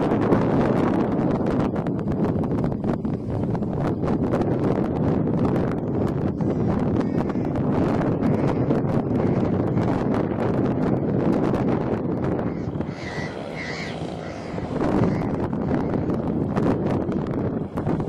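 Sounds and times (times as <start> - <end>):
model plane engine drone: 0.0 - 18.0
wind buffeting microphone: 0.0 - 18.0.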